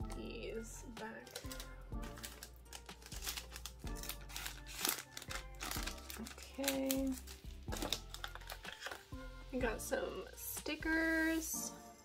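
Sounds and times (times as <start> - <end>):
background music: 0.0 - 12.0
photo cards clicking and tapping: 1.2 - 9.1.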